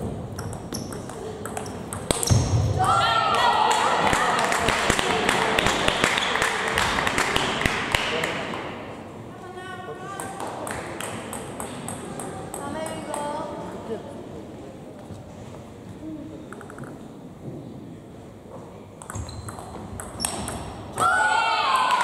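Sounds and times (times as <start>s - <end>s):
table tennis balls clicking: 0.3s - 2.4s
loud voices: 2.7s - 6.0s.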